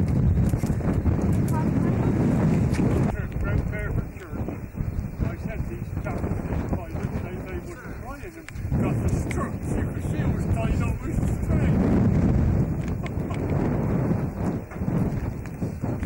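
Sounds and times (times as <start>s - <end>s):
wind buffeting microphone: 0.0s - 16.0s
indistinct voices: 1.4s - 12.0s.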